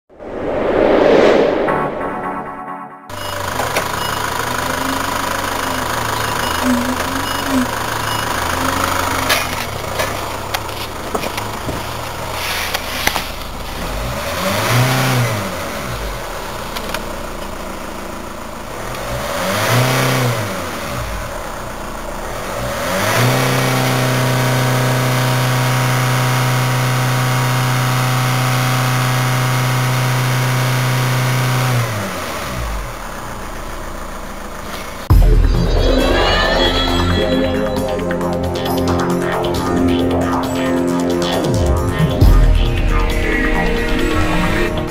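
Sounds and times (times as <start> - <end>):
music: 1.7 - 3.2, 35.1 - 44.9
diesel engine revving: 3.1 - 44.9.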